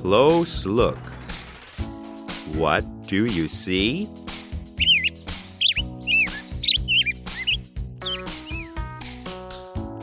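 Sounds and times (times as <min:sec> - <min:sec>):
background music: 0:00.0 - 0:10.0
high bird chirps: 0:04.8 - 0:09.2.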